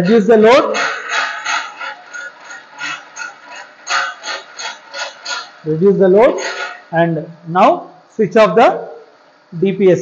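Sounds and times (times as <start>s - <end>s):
mechanical clicks and rasps: 0.0s - 7.0s.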